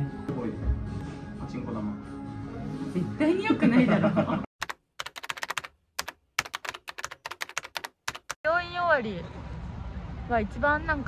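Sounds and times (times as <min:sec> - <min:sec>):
computer keyboard typing: 0:04.6 - 0:08.4.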